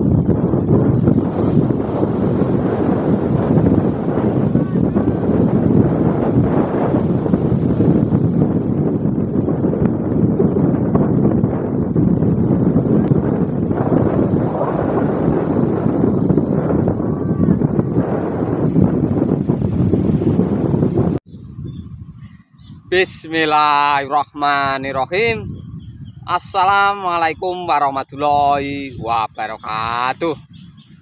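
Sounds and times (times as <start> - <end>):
ocean surf breaking: 0.0 - 9.0
wind buffeting microphone: 0.0 - 31.0.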